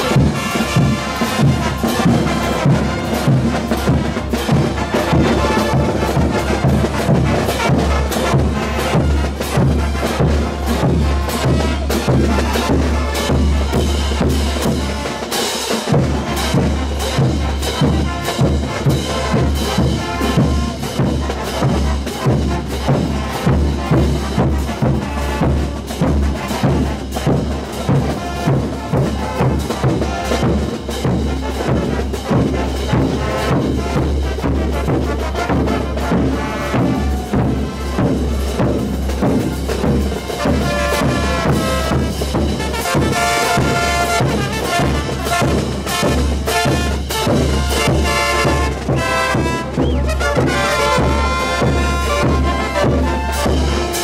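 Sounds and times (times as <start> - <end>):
bass drums: 0.0 - 15.1, 15.8 - 54.0
brass band playing dance music: 0.0 - 54.0
cymbals: 0.0 - 54.0
snare drum: 0.0 - 54.0.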